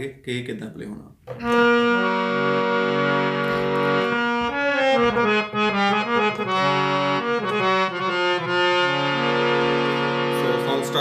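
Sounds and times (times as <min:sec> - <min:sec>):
harmonium melody: 0:01.3 - 0:11.0.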